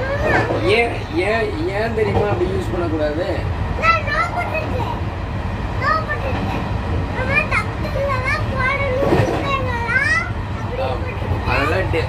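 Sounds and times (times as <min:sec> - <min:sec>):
child talking: 0:00.0 - 0:01.0, 0:03.7 - 0:05.1, 0:05.7 - 0:11.9
train carriage rumble: 0:00.0 - 0:12.0.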